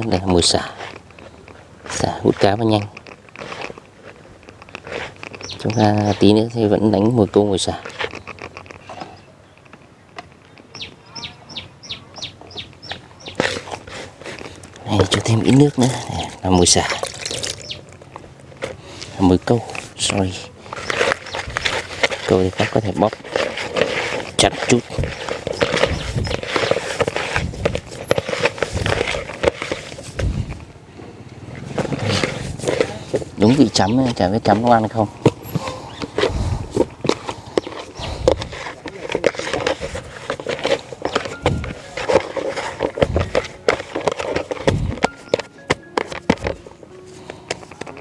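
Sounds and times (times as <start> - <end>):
hands crumbling groundbait in plastic: 13.3 - 18.0, 20.7 - 30.7
scraping against plastic basin: 18.6 - 30.6, 31.5 - 48.0.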